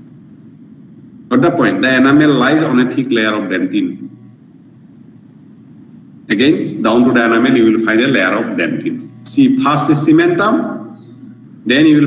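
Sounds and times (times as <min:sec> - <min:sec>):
low background noise: 0:00.0 - 0:12.0.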